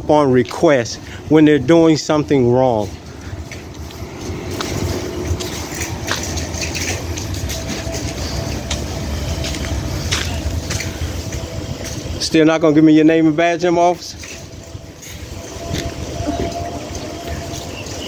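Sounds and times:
car engine idling: 0:00.0 - 0:18.0
handling noise: 0:02.6 - 0:12.4.

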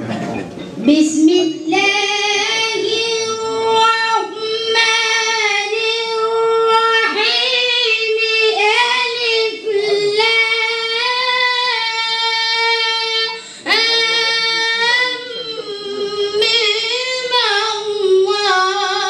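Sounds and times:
boy chanting religious verse: 0:00.8 - 0:19.0.

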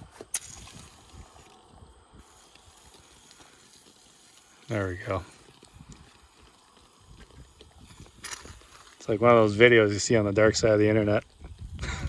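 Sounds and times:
aerosol shaving cream spraying: 0:02.2 - 0:06.4.

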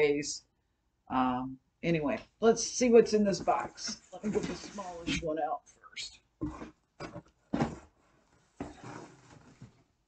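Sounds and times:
rustling and scraping: 0:03.2 - 0:05.3, 0:06.4 - 0:10.0
knocks in cardboard box: 0:06.4 - 0:07.9.

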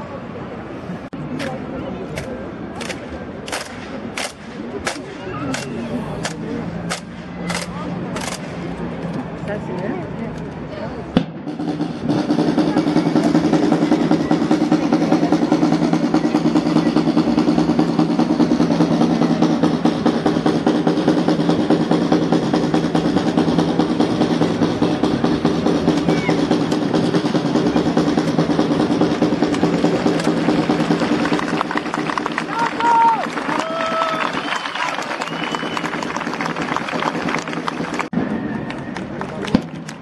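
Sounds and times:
crowd murmur: 0:00.0 - 0:40.0
snare drum roll: 0:11.2 - 0:38.1.

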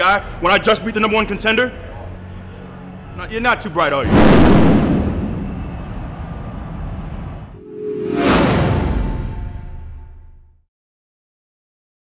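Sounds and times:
rumbling background noise: 0:01.8 - 0:07.6.

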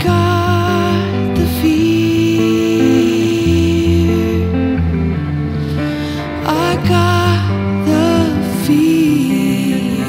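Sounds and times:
electric guitar holding a note: 0:00.0 - 0:10.0.

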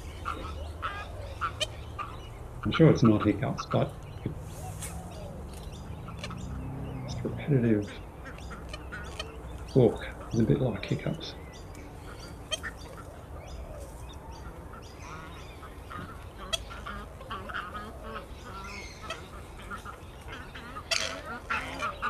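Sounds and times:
swamphen repeated calls: 0:00.0 - 0:22.0.

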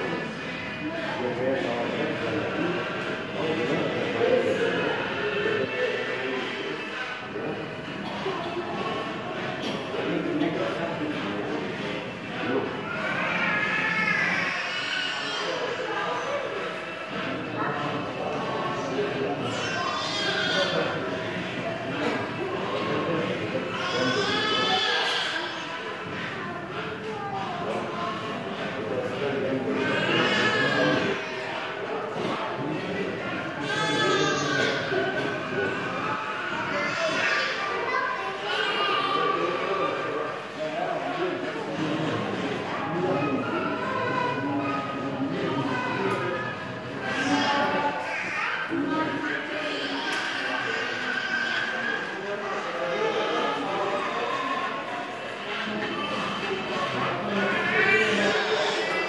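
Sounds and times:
indistinct voices murmuring: 0:00.0 - 0:59.0.

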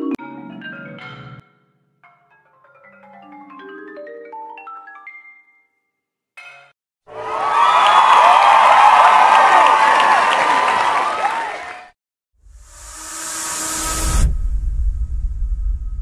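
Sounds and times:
audience cheering and applause: 0:07.1 - 0:12.0.

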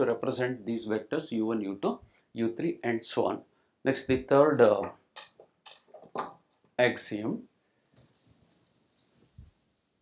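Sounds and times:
eraser rubbing on chalkboard: 0:08.0 - 0:10.0.

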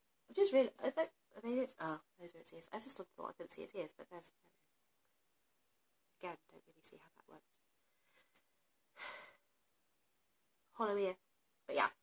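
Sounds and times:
woman sighing: 0:09.0 - 0:09.4.

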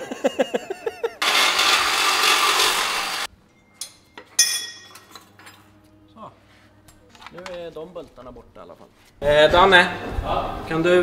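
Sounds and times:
power tool running: 0:01.2 - 0:03.3
metal part clinking: 0:03.5 - 0:05.7.

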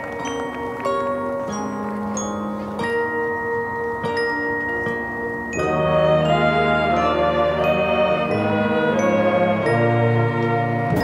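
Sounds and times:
mallet percussion chords ringing: 0:00.0 - 0:11.0.

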